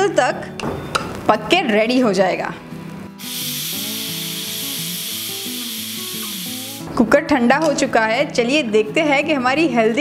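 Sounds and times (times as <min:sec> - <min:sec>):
light background music: 0:00.0 - 0:10.0
pressure cooker steam hissing: 0:03.2 - 0:06.8.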